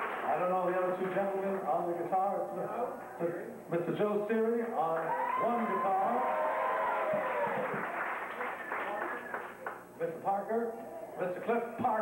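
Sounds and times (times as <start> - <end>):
audience applause: 0.0 - 0.4, 5.0 - 9.8.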